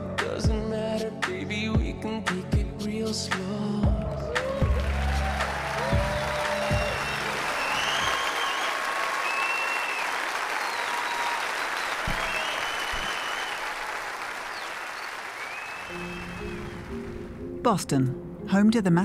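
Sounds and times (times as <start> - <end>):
audience applauding and cheering: 3.8 - 17.4
whoops: 4.0 - 14.1
song ending: 15.9 - 18.4.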